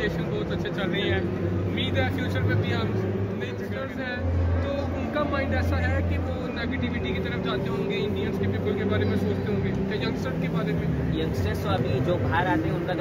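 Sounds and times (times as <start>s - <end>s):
crowd noise: 0.0s - 13.0s
men talking: 0.0s - 13.0s
steady low hum: 0.0s - 13.0s.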